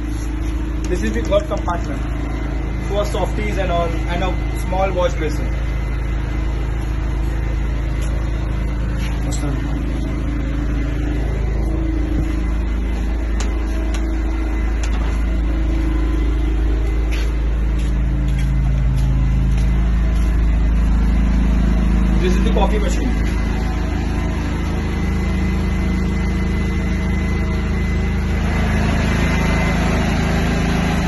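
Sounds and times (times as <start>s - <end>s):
generator engine hum: 0.0s - 31.0s.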